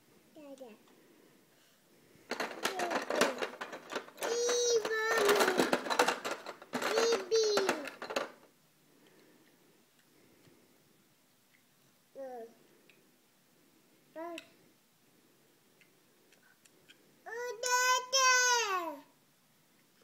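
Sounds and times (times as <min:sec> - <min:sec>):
plastic toys rattling: 0:02.3 - 0:08.5
toddler babbling: 0:04.2 - 0:05.6, 0:06.8 - 0:07.9, 0:12.2 - 0:12.6, 0:17.3 - 0:19.1.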